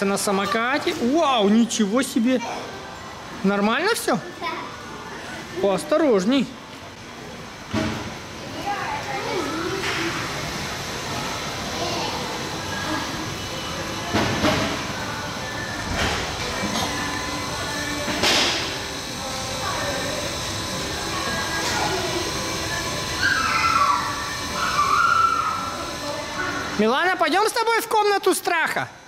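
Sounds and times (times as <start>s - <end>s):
music: 14.1s - 26.7s
children's voices and shouts: 23.2s - 25.8s.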